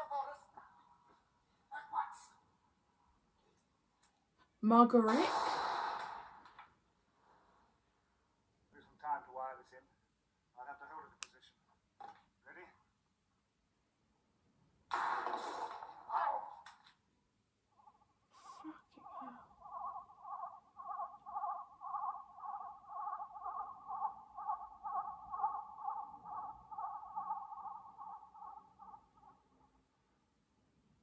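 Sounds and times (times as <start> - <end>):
hiss and crackle burst: 5.2 - 6.6, 14.9 - 16.8
pulsing electronic warble: 19.0 - 29.8.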